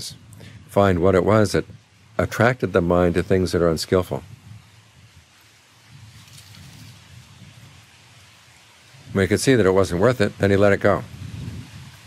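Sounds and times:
steady soft hiss: 0.0s - 12.0s.

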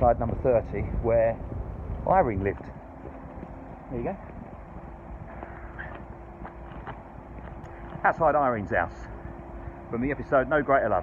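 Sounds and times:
distant traffic rumble: 0.0s - 11.0s
faint steady hum: 0.0s - 11.0s.

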